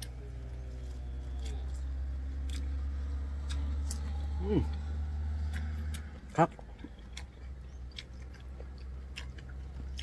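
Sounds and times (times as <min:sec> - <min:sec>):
chewing bamboo shoot: 0:00.0 - 0:10.0
man humming: 0:04.1 - 0:04.8.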